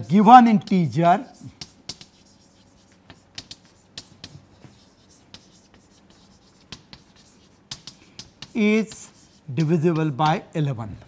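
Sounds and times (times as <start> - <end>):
chalk tapping and scraping: 0.0 - 10.5.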